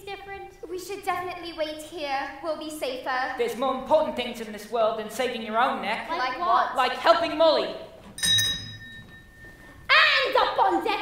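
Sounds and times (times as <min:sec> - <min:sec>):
struck chime ringing: 0:08.2 - 0:09.9.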